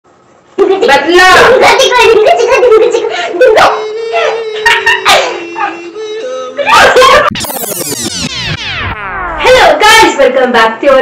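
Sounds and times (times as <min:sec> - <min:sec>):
child shrieking laughter: 0:04.2 - 0:05.7.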